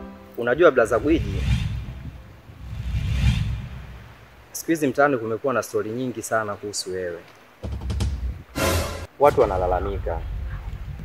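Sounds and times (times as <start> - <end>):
wind buffeting microphone: 0.6 - 4.6, 7.7 - 8.6, 9.4 - 11.0.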